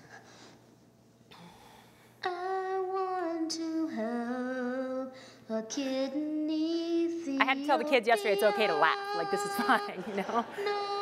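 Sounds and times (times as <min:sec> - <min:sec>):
faint recording hiss: 0:00.0 - 0:11.0
girl singing a ballad: 0:05.6 - 0:11.0.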